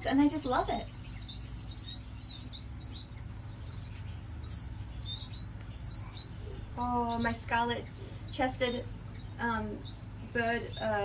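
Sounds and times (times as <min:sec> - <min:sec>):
low background rumble: 0:00.0 - 0:11.0
small birds chirping: 0:00.0 - 0:11.0.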